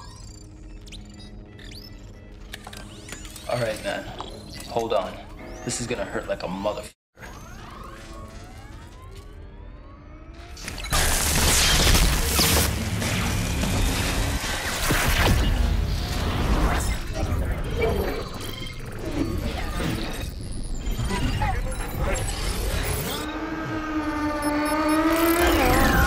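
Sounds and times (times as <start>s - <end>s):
gliding electronic whine: 7.2s - 26.0s
electric crackling and zapping: 10.6s - 17.1s.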